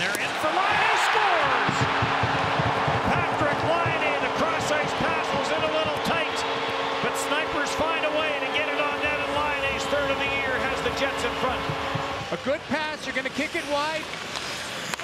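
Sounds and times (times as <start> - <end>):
crowd cheering and screaming: 0.2 - 12.6
goal horn: 3.1 - 12.4.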